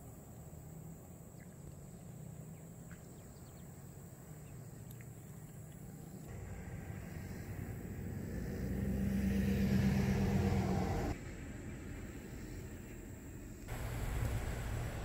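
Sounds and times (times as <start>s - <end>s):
vehicle engine and tyres: 6.1s - 15.0s.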